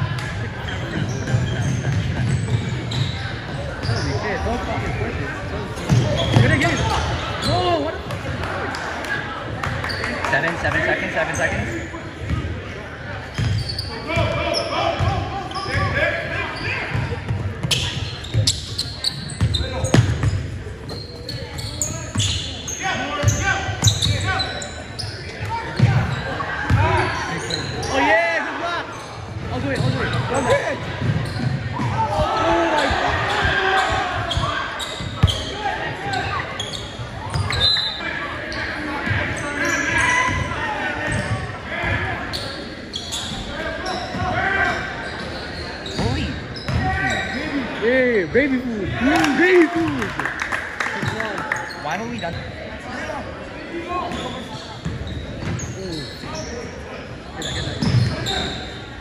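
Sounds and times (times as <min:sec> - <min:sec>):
voices of players and spectators: 0:00.0 - 0:59.0.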